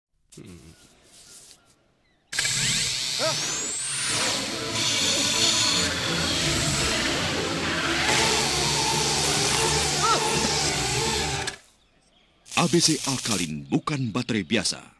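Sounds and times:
electric shaver buzzing: 2.4s - 11.6s, 12.5s - 13.5s
man exclaiming: 3.2s - 3.5s, 9.9s - 10.8s.

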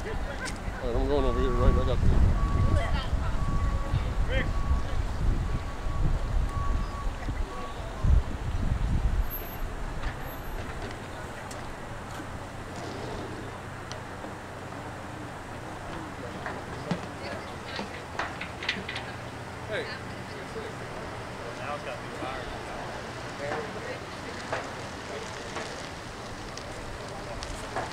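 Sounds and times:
wind rumbling on microphone: 0.0s - 13.9s
faint voices: 0.0s - 27.9s.

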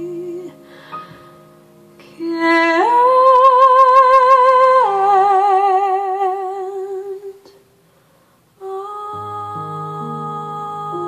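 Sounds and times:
woman singing with vibrato: 0.0s - 1.2s, 2.0s - 7.6s, 8.6s - 11.0s
soft accompaniment: 0.0s - 7.5s.

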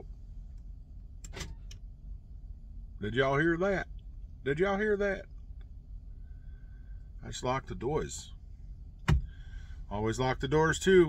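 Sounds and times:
low hum: 0.0s - 11.0s.

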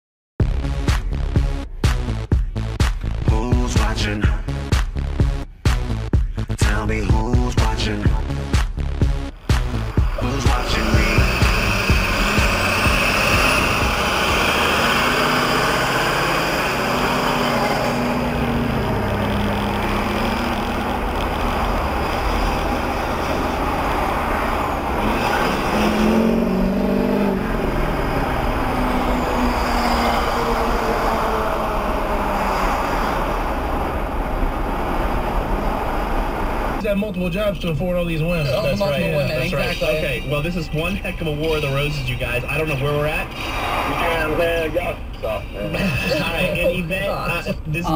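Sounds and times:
car road and engine noise: 0.5s - 47.9s
faint car radio: 36.7s - 47.9s.

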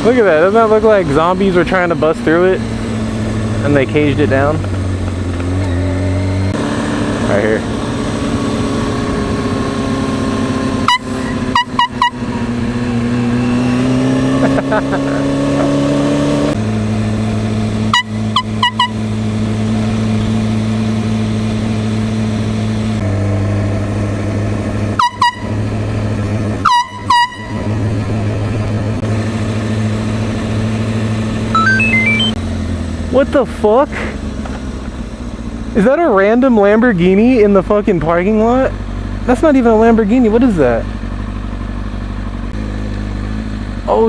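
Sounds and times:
motorcycle engine running: 0.0s - 44.0s
air horn blasts: 10.9s - 12.3s, 17.9s - 19.0s, 25.0s - 25.6s, 26.6s - 27.7s.

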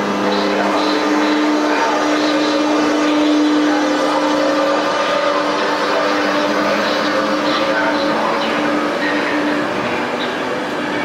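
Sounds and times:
electric locomotive whine: 0.0s - 11.0s
train running on rails: 0.0s - 11.0s.

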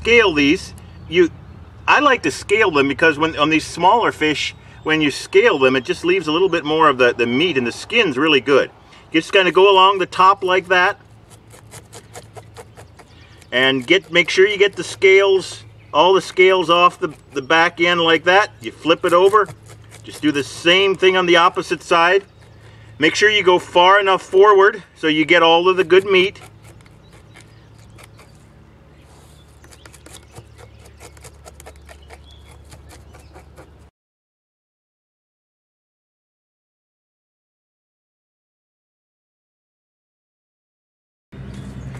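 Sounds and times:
blade scraping fish scales: 9.2s - 23.4s, 25.3s - 33.9s.

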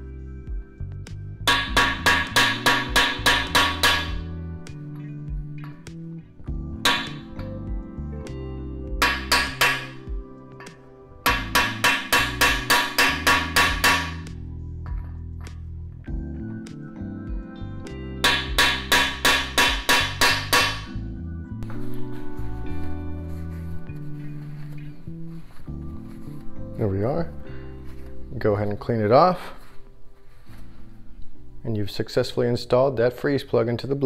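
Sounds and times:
background music: 0.0s - 34.0s
hammer striking metal: 1.5s - 4.3s, 6.8s - 7.5s, 9.0s - 15.2s, 18.2s - 21.0s.

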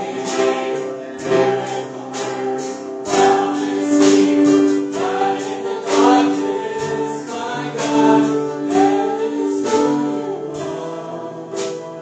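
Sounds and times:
keyboard and drums: 0.0s - 12.0s
people singing in harmony: 0.0s - 12.0s.

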